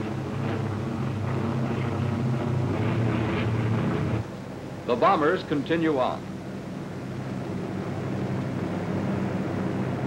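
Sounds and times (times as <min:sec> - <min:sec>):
aircraft engines droning: 0:00.0 - 0:10.0.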